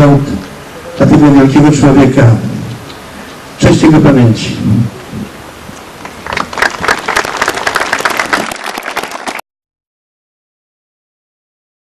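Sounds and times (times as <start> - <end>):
crowd applauding: 6.0 - 9.4.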